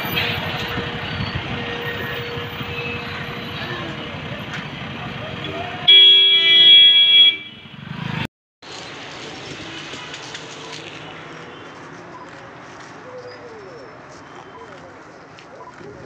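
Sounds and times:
loud vehicle horn: 0.0s - 4.0s, 5.4s - 8.2s
street traffic: 0.0s - 16.0s.

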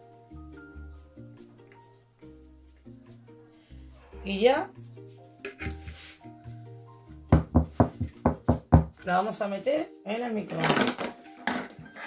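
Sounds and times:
background music: 0.0s - 12.0s
plastic mould knocking on table: 7.4s - 9.0s.

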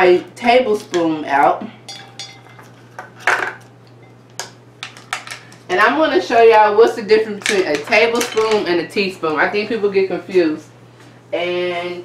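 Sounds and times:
measuring spoons clinking: 1.9s - 2.8s.

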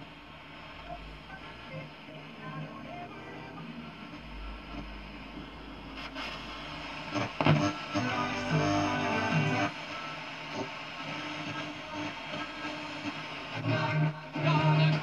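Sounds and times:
music from radio station: 0.0s - 15.0s
radio static between stations: 0.0s - 15.0s.

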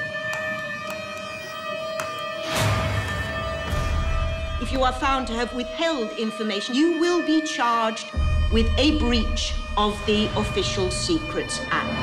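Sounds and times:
sustained drone note: 0.8s - 12.0s.

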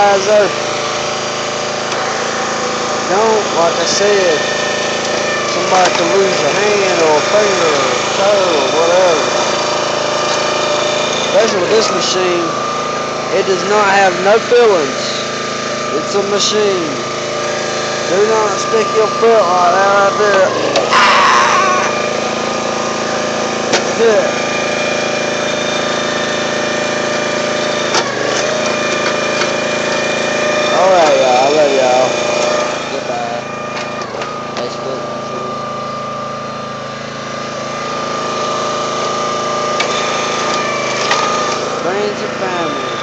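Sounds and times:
small engine running: 0.0s - 43.0s.

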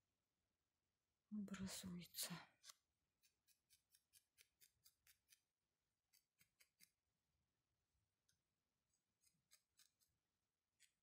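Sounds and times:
felting needle stabbing wool: 2.6s - 7.2s, 8.2s - 11.0s.

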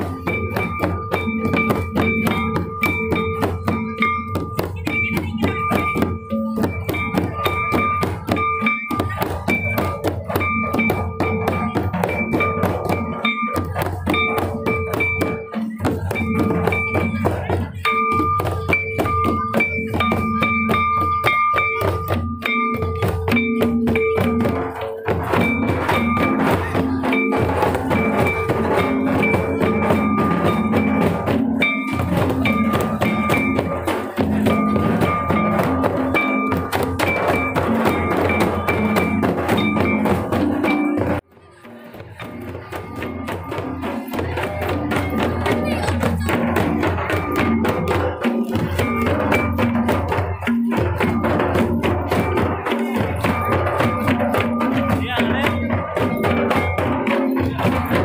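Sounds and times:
rapid hand drum strokes: 0.0s - 58.0s.

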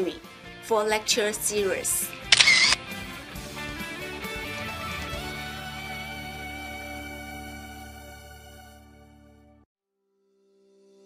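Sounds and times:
soft background music: 0.0s - 9.6s
camera shutter sound effect: 2.3s - 2.8s.

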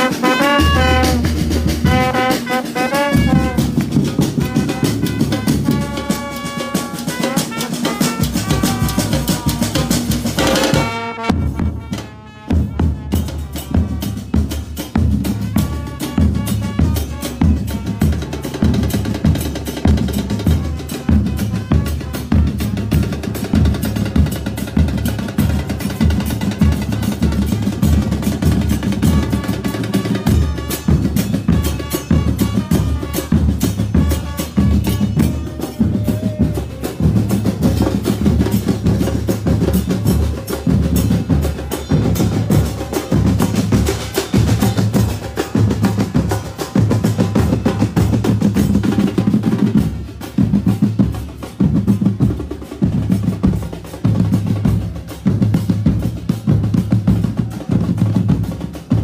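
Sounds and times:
brass melody: 0.0s - 23.5s, 25.5s - 51.6s
bass and snare drums playing: 0.0s - 59.0s.

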